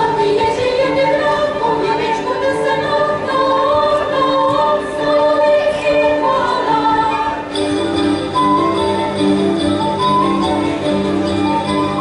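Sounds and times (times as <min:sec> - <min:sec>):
girls singing folk song: 0:00.0 - 0:07.5
instruments playing: 0:05.1 - 0:12.0.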